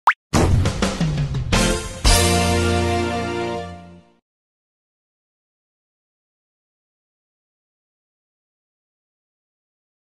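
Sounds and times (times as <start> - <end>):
animated intro music: 0.3 - 4.2.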